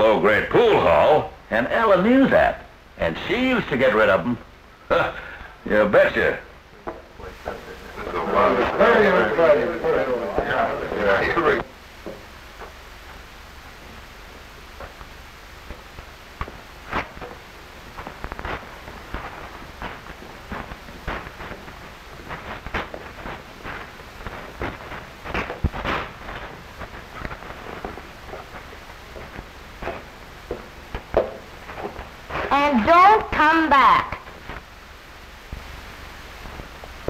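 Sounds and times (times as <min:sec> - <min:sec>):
old film soundtrack hiss: 0:00.0 - 0:37.0.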